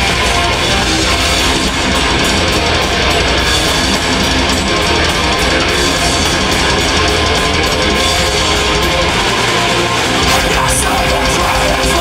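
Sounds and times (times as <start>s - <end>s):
bass guitar: 0.0s - 12.0s
distorted electric guitars: 0.0s - 12.0s
fast drum beat: 0.0s - 12.0s.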